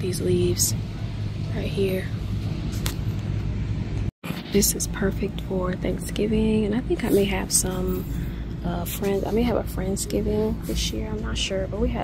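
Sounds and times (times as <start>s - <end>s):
store background hum: 0.0s - 12.0s.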